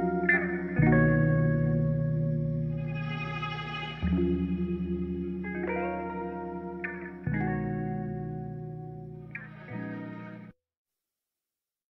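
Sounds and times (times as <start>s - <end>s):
guitar with effects sustained chords: 0.0s - 10.5s.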